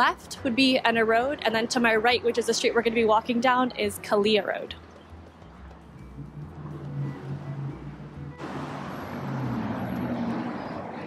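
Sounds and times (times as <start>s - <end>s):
road traffic: 0.0s - 11.0s
soft background music: 0.0s - 11.0s
car passing close by: 5.8s - 11.0s.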